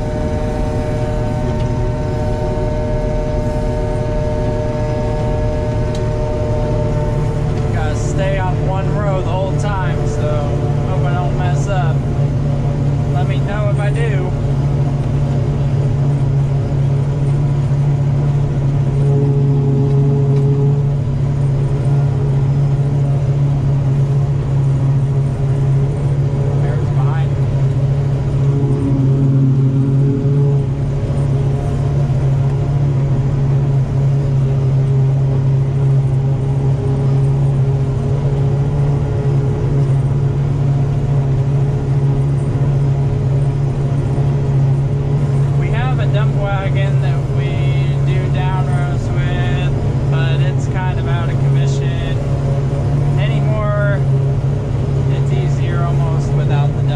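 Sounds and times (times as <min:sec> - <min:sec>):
forage harvester hum: 0:00.0 - 0:56.9
wavering higher sound: 0:28.0 - 0:32.0.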